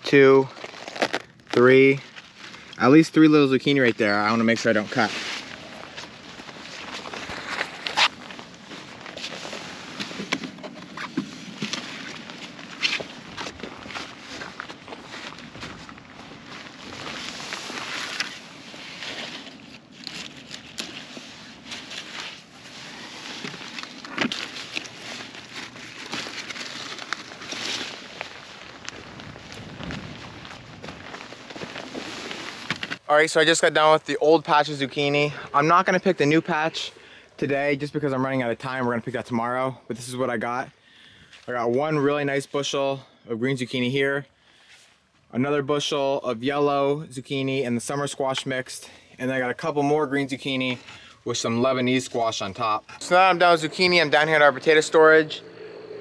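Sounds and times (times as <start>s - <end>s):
leaves and stems rustling: 0.0s - 37.2s, 50.4s - 56.0s.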